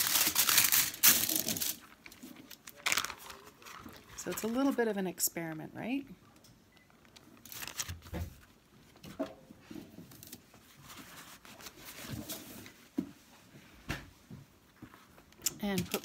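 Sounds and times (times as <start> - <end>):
faint knocks and rustling: 8.0 - 15.3.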